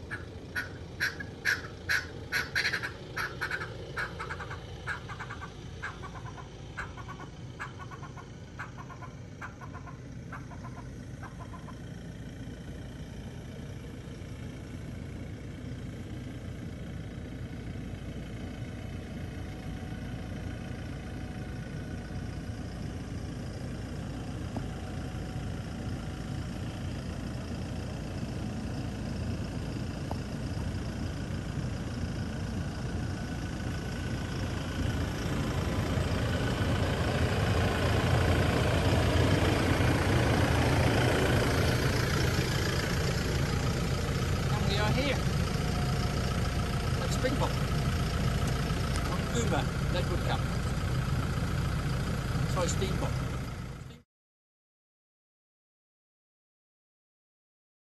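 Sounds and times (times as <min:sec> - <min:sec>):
bird sharp calls: 0:00.0 - 0:11.8
vehicle engine running: 0:00.0 - 0:54.0.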